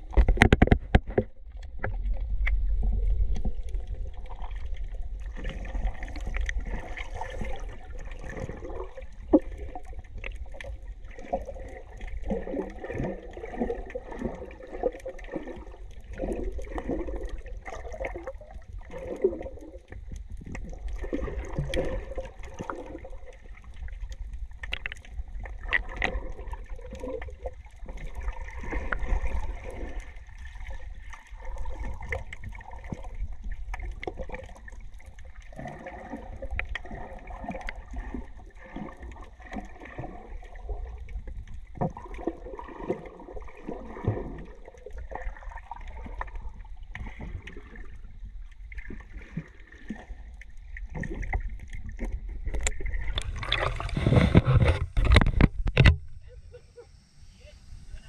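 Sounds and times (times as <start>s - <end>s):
water sloshing underwater: 0.0s - 58.0s.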